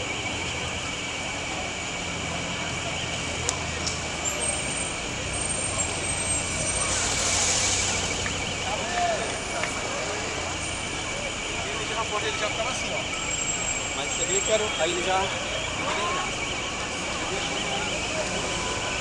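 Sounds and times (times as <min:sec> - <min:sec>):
crowd voices: 0:00.0 - 0:19.0
low traffic rumble: 0:00.0 - 0:19.0.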